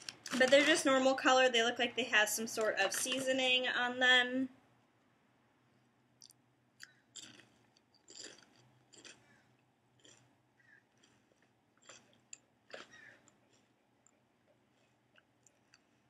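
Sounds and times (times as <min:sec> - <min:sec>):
crisp chip crunches: 0:06.8 - 0:10.3, 0:10.9 - 0:13.8.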